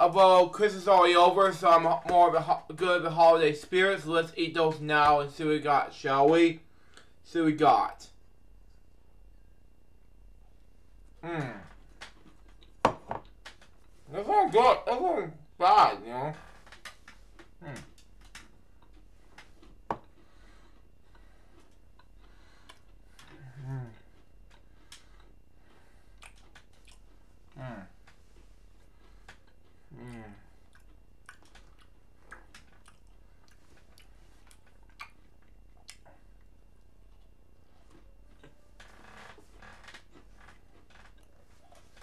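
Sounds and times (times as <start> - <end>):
person chewing crunchy cookie: 11.2 - 14.1, 16.7 - 42.0.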